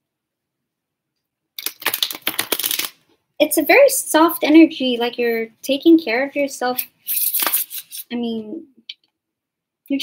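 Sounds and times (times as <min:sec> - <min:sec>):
cards being shuffled: 0:01.6 - 0:03.0, 0:06.8 - 0:08.1.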